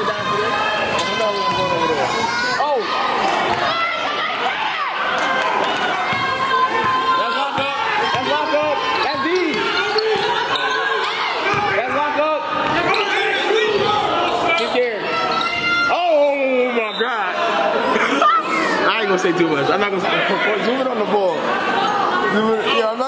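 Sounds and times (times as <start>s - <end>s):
sneakers squeaking: 5.7s - 15.9s
basketball dribbling: 6.0s - 10.6s, 11.4s - 13.1s.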